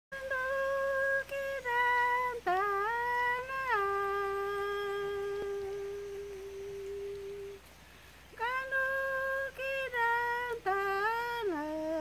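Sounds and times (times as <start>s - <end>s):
woman singing a chant: 0.1s - 12.0s.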